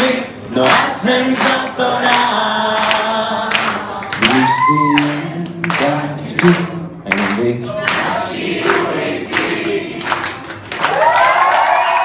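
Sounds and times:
audience clapping: 0.0 - 12.0.

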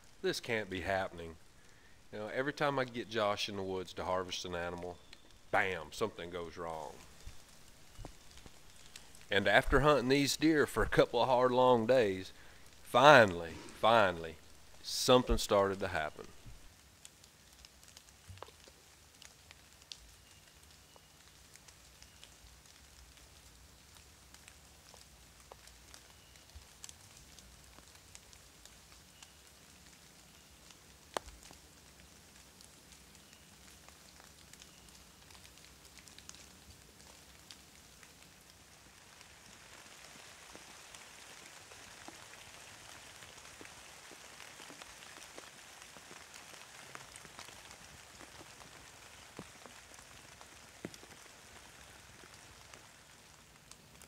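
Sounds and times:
light rain on leaves: 0.0 - 54.0.

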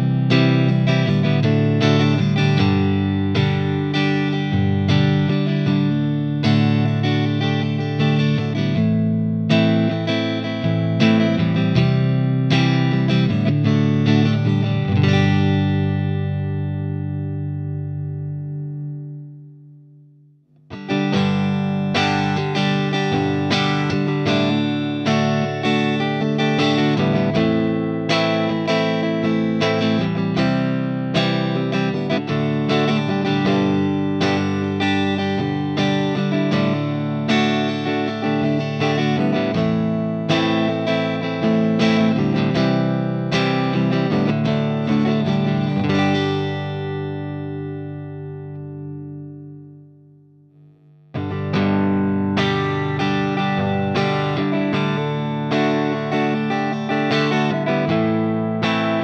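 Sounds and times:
clean electric guitar chords: 0.0 - 59.0.

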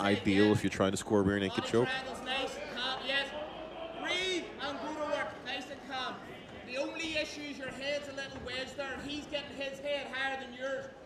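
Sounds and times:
close commentary: 0.0 - 11.0.

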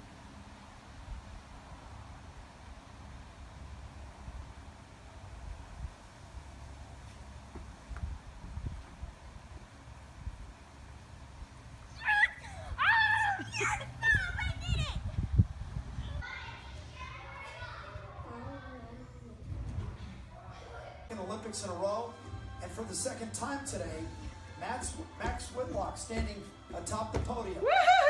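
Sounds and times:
wind rumble on microphone: 7.8 - 10.6, 14.0 - 16.4
child shrieking excitedly: 11.9 - 15.0, 27.6 - 28.0.

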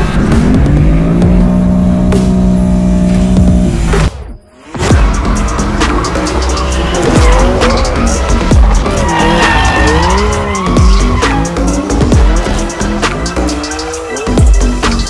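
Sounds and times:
car engine revving: 0.0 - 15.0
electronic music with heavy beat: 0.0 - 15.0
tyres squealing: 5.0 - 14.4.

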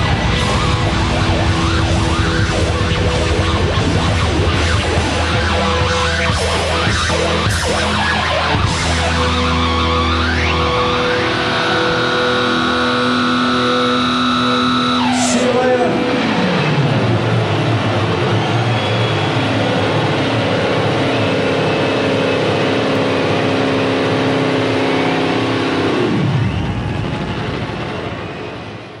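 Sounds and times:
electric guitar feedback drones: 0.0 - 29.0.

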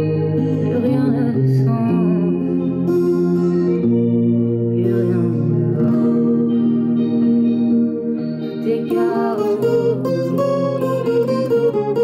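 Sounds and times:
steel-string guitar chords: 0.0 - 12.0.

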